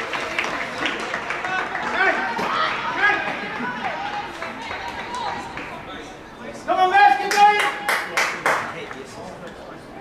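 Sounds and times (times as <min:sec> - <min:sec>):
sharp handclaps: 0:07.3 - 0:08.7.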